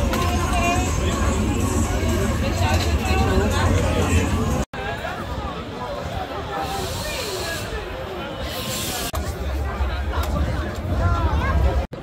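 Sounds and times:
crowd babble: 0:00.0 - 0:12.0
hiss: 0:06.6 - 0:07.8, 0:08.4 - 0:09.1.

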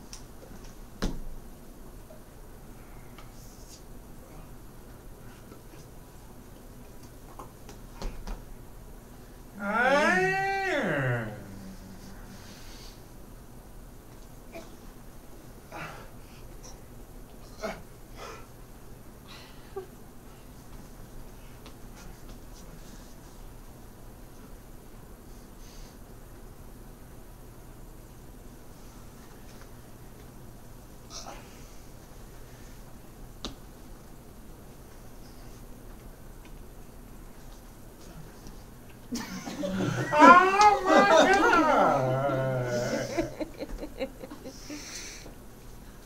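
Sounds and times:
person wordless vocal sound: 0:09.6 - 0:12.4, 0:40.2 - 0:43.4
hand clap: 0:40.5 - 0:41.7.

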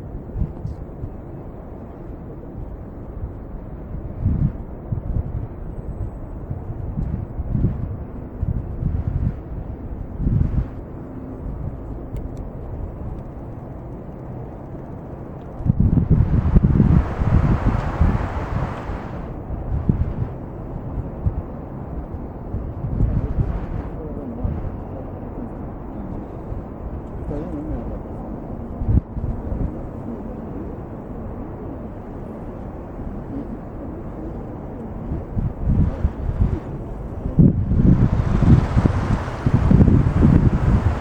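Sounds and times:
wind buffeting microphone: 0:00.0 - 0:41.0.

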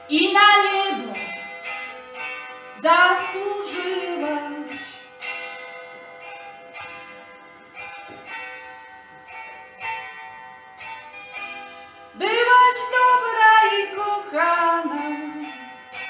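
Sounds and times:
woman singing: 0:00.0 - 0:01.3, 0:02.8 - 0:05.0, 0:12.2 - 0:15.7.

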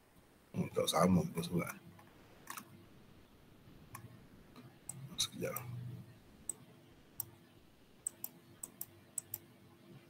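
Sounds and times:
computer mouse clicks: 0:02.0 - 0:02.7, 0:08.0 - 0:09.5.

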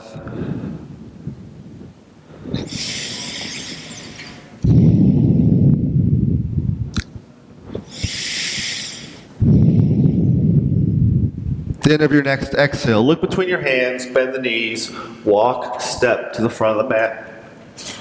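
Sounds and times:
deep breathing into microphone: 0:00.1 - 0:01.4, 0:02.2 - 0:06.3, 0:07.7 - 0:11.4.

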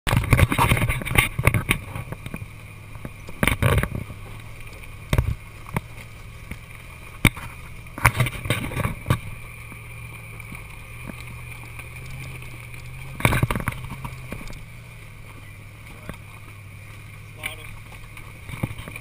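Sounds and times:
engine running low: 0:00.0 - 0:19.0.

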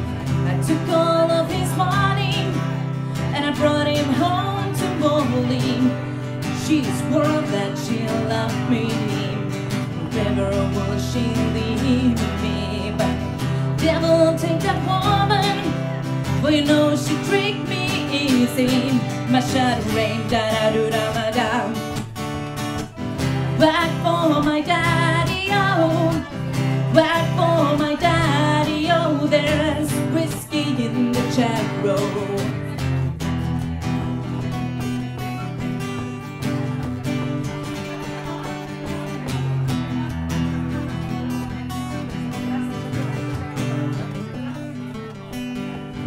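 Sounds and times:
acoustic guitar playing: 0:00.0 - 0:46.0.

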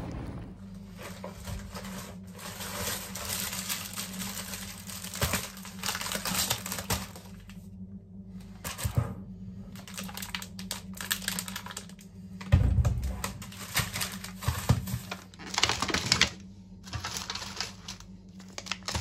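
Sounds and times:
plastic packaging crinkling: 0:01.5 - 0:07.6, 0:09.7 - 0:12.0, 0:13.1 - 0:19.0
heavy thump: 0:12.5 - 0:13.2.

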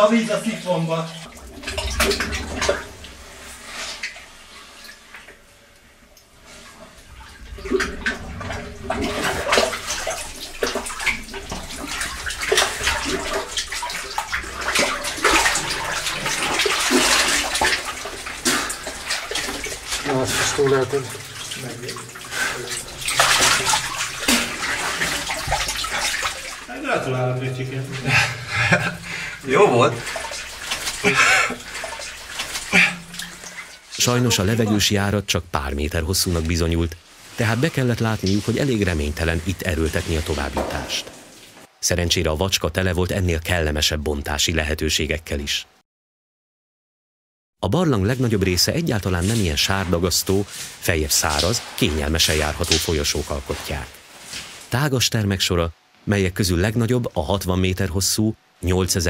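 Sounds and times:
water sloshing and splashing: 0:00.0 - 0:41.8, 0:48.1 - 0:54.8.

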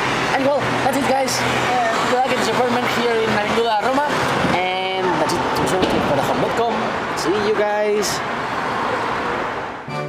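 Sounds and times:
street traffic noise: 0:00.0 - 0:10.0
man talking: 0:00.3 - 0:08.2.

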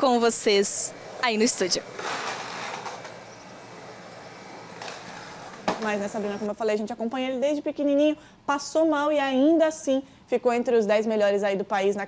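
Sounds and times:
skateboard wheels rolling on concrete: 0:00.2 - 0:06.5.

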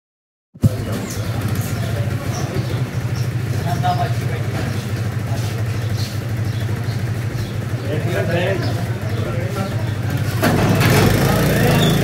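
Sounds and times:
faint voices talking: 0:00.6 - 0:12.0
small engine idling: 0:00.7 - 0:12.0.

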